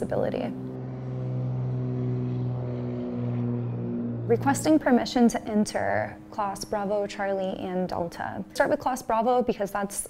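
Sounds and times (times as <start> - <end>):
propeller airplane engine drone: 0.0 - 8.8.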